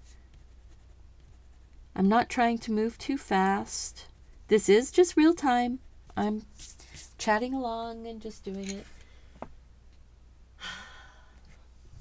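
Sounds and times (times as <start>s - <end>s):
woman sighing: 10.6s - 11.4s.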